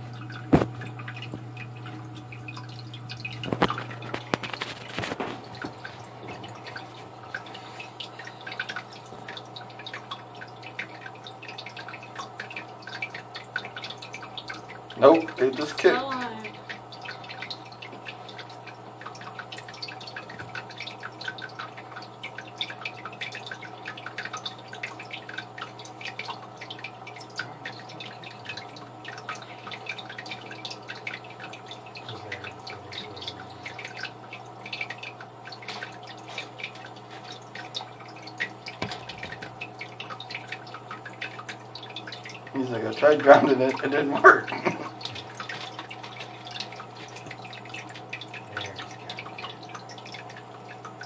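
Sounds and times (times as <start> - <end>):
water trickling into tank: 0.0 - 51.0.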